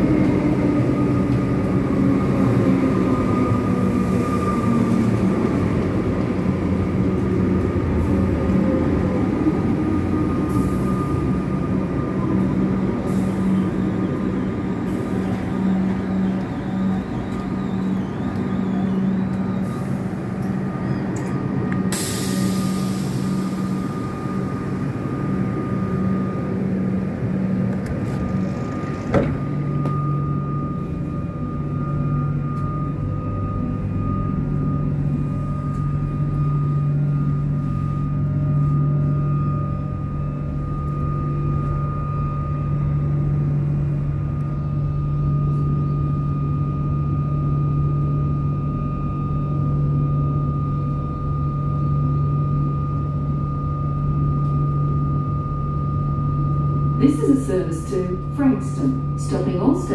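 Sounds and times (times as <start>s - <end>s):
train equipment hum and whine: 0.0s - 59.9s.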